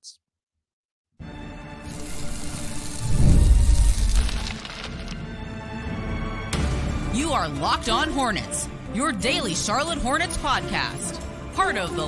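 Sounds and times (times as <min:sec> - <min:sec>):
hissing build-up: 0:01.9 - 0:04.6.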